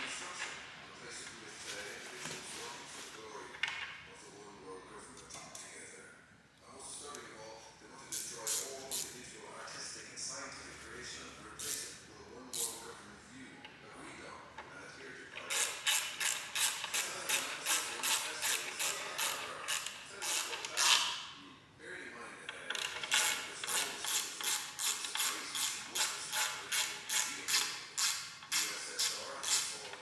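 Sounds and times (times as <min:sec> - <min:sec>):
ratchet wrench clicking: 0:08.1 - 0:09.2, 0:12.6 - 0:12.8, 0:15.5 - 0:21.1, 0:22.8 - 0:29.8.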